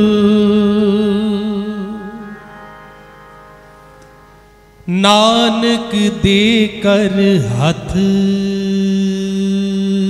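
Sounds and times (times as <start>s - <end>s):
man singing devotional chant: 0.0s - 2.6s, 4.8s - 10.0s.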